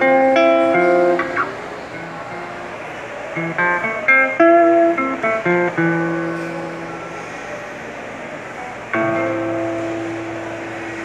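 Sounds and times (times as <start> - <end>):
acoustic guitar chords ringing: 0.0 - 7.4, 8.9 - 11.0.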